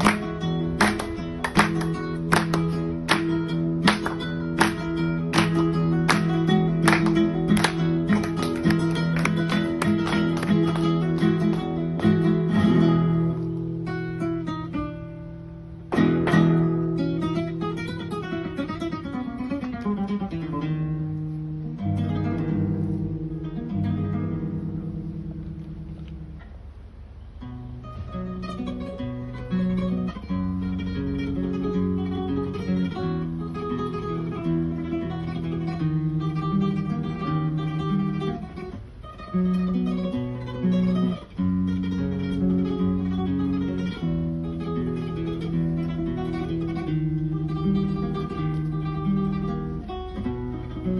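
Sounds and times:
solo flamenco guitar: 0.0s - 50.9s.

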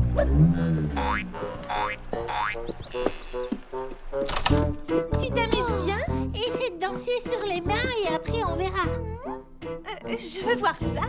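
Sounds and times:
cartoon boing sound effects: 0.0s - 3.3s
light background music: 1.7s - 11.0s.

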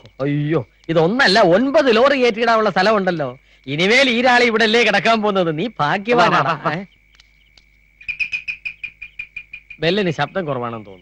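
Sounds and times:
high-pitched insect drone: 0.0s - 11.0s.

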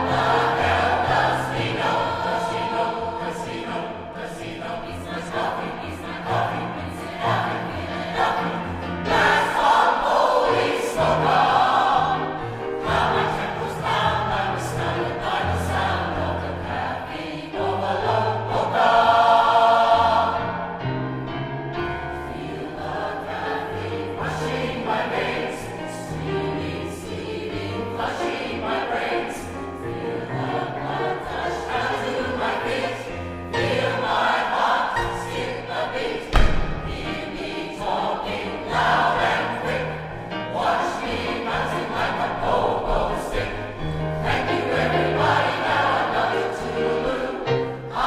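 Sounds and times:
choir singing in harmony: 0.0s - 48.0s.

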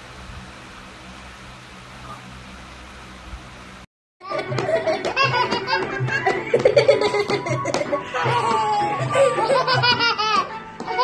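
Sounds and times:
background music: 4.2s - 11.0s
toddler laughing: 4.2s - 11.0s.

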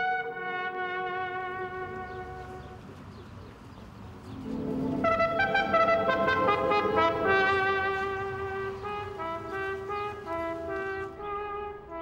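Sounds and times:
brass chord: 0.0s - 2.6s, 4.4s - 12.0s.

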